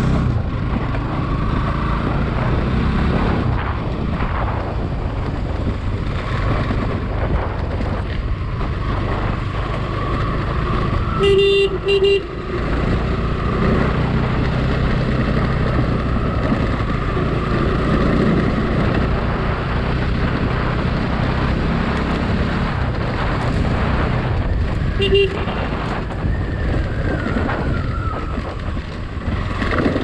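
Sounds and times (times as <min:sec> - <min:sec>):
motorcycle engine running: 0:00.0 - 0:30.0
wind rushing over microphone: 0:00.0 - 0:30.0
horn beeps: 0:11.1 - 0:12.6, 0:24.9 - 0:25.6.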